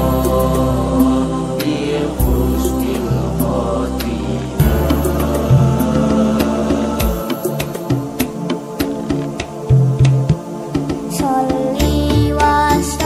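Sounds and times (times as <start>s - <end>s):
sustained bass notes: 0.0s - 8.3s
percussion strikes: 0.0s - 12.8s
chanted devotional vocals: 0.0s - 13.0s.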